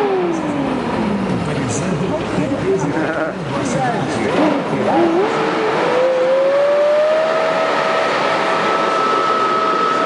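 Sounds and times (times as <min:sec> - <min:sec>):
road and engine noise in car: 0:00.0 - 0:10.0.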